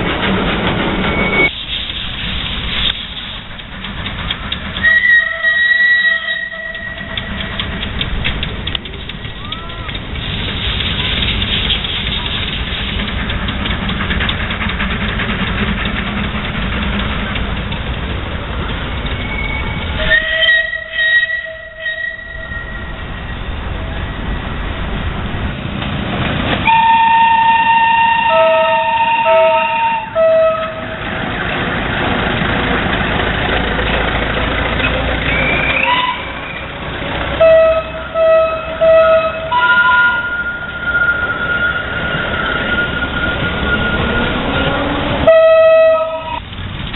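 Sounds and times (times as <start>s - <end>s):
small train running: 0.0s - 46.9s
locomotive whistle: 1.0s - 1.5s, 4.8s - 7.9s, 19.1s - 23.5s, 26.6s - 31.1s, 35.2s - 46.4s.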